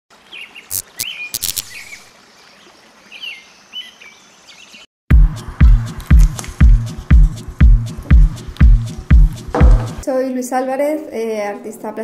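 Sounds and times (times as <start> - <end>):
sharp clicks: 1.4 - 1.8
electronic music with heavy kick: 5.1 - 10.0.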